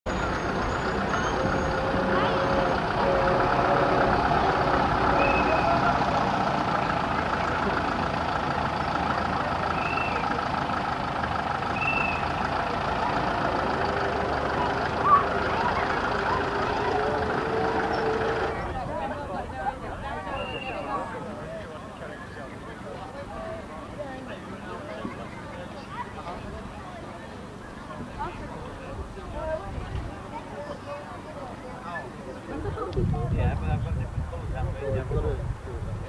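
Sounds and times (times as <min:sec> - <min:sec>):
truck engine running: 0:00.1 - 0:20.0
voices in background: 0:00.1 - 0:36.0.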